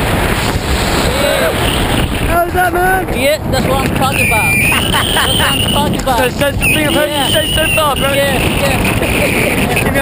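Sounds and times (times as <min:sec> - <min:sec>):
strong wind on microphone: 0:00.0 - 0:10.0.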